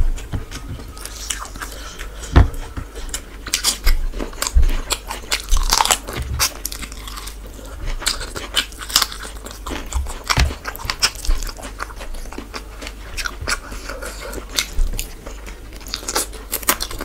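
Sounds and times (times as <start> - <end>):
chewing and biting food: 0.0 - 17.0.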